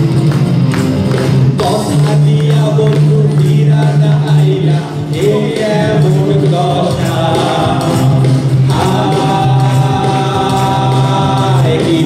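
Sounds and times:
band with guitars and keyboard: 0.0s - 12.0s
voices singing together: 1.6s - 12.0s.

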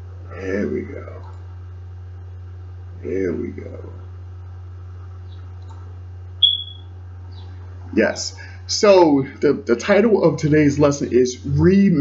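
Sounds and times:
steady low hum: 0.0s - 12.0s
short high-pitched chirp: 6.4s - 6.9s.

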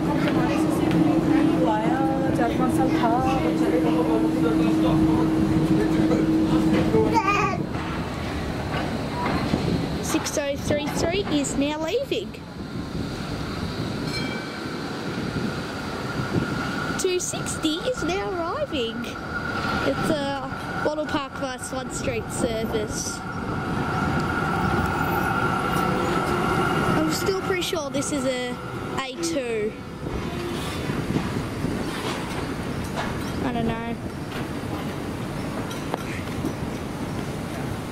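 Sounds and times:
tram running rumble: 0.0s - 37.9s.

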